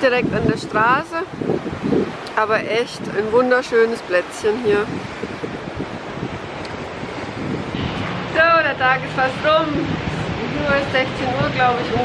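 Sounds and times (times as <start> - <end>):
small waves washing on rocky shore: 0.0 - 12.0
wind buffeting microphone: 0.0 - 12.0.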